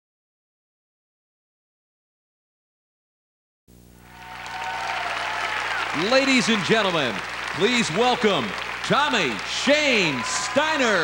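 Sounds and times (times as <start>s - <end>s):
audience applauding: 4.1s - 11.0s.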